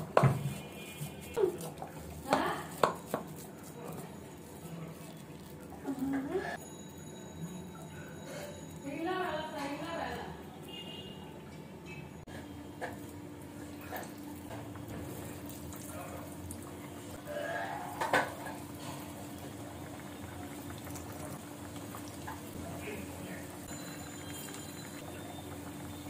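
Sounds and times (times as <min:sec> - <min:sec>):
hot oil sizzling: 0:14.2 - 0:26.0.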